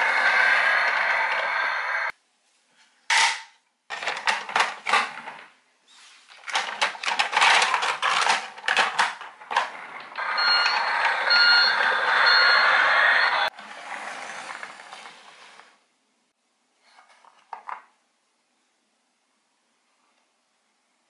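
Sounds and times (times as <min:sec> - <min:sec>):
toy electronic engine noise: 0:00.0 - 0:02.1, 0:08.8 - 0:15.7
plastic toy clattering down ramp: 0:03.1 - 0:05.5, 0:06.4 - 0:10.0
toy rolling noise: 0:06.4 - 0:15.8
reversing beep: 0:10.2 - 0:13.5.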